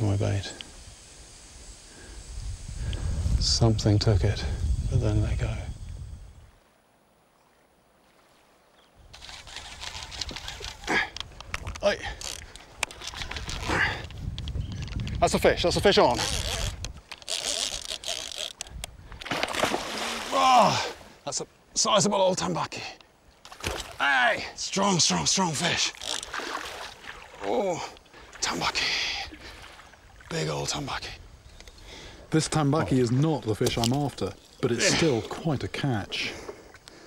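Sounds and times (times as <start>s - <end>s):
fishing reel line hissing: 0.0s - 3.6s, 9.1s - 14.8s, 15.8s - 19.1s, 25.2s - 27.0s
faint outdoor ambience by water: 5.0s - 37.0s
fishing reel clicks: 9.1s - 13.6s, 16.1s - 19.0s, 25.7s - 26.4s.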